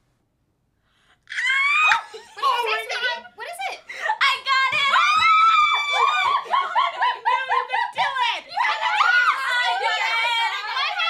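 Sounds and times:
woman shrieking with delight: 0:01.3 - 0:02.2, 0:04.9 - 0:07.3.

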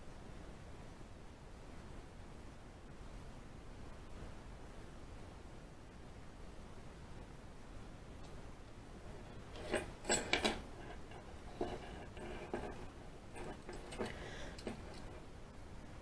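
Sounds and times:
metal scraping and ticking: 0:09.1 - 0:15.2
lockpicking tools clicking: 0:09.2 - 0:15.2.

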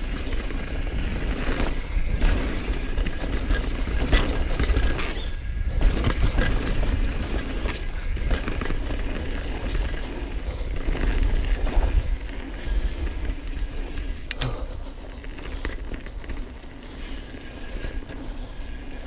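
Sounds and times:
bike chain and frame rattling: 0:00.0 - 0:19.0
tyres rolling over dirt: 0:00.0 - 0:19.0
wind rumbling on microphone: 0:00.0 - 0:19.0
sharp clicks: 0:14.2 - 0:14.7.

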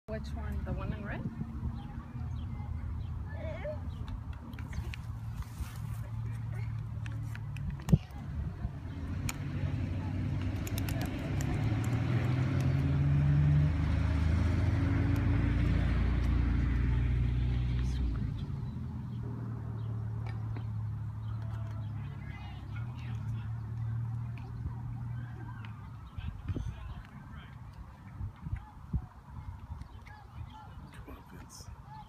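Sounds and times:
faint distant voices: 0:00.1 - 0:13.3, 0:15.7 - 0:32.0
car engine humming: 0:00.1 - 0:27.5.

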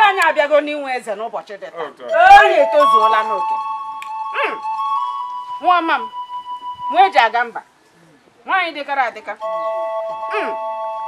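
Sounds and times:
short pitched calls: 0:02.1 - 0:07.3
film score of bell-like tones: 0:02.1 - 0:07.4, 0:09.4 - 0:11.0.

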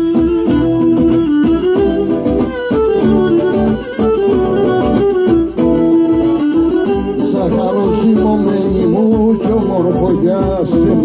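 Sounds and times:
bowed lyra melody: 0:00.0 - 0:11.0
lute strumming: 0:00.0 - 0:11.0.

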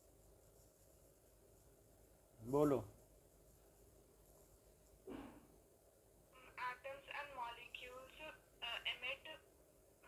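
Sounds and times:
person speaking through phone speaker: 0:06.4 - 0:09.4.

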